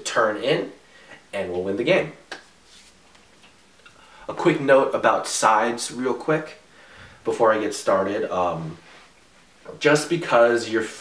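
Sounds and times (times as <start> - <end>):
man speaking: 0.0 - 2.3, 4.3 - 8.9, 9.6 - 11.0.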